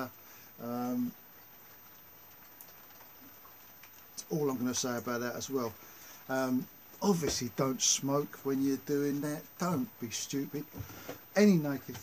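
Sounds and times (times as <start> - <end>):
faint steady hiss: 0.0 - 12.0
man's voice: 4.2 - 10.8, 11.4 - 12.0.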